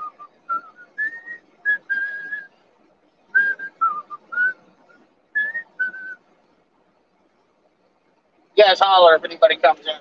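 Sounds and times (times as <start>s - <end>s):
man whistling: 0.0s - 2.5s, 3.3s - 6.2s.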